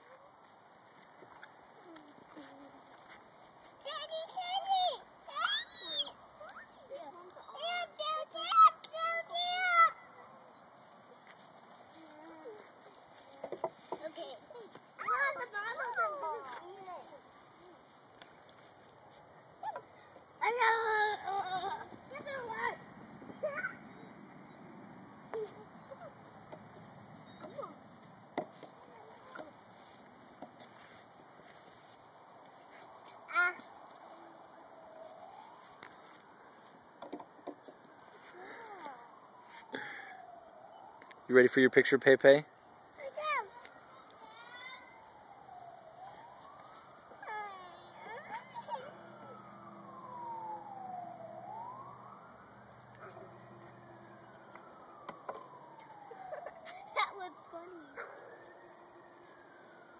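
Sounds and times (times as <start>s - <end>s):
emergency siren wailing: 20.4s - 59.9s.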